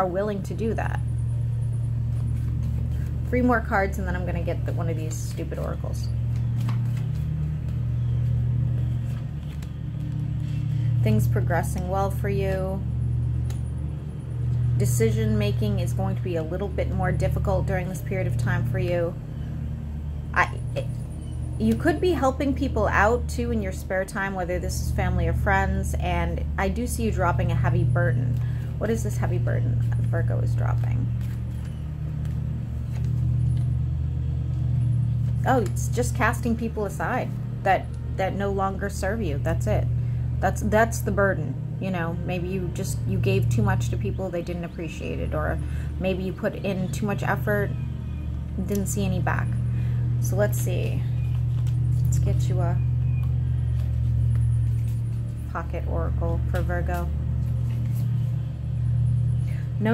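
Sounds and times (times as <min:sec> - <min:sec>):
low mechanical hum: 0:00.0 - 0:59.9
steady low rumble: 0:00.0 - 0:59.9
cards clicking softly: 0:08.8 - 0:10.3.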